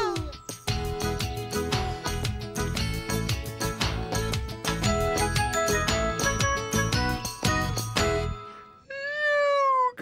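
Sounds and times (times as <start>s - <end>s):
puppet voice falling in pitch: 0.0s - 0.4s.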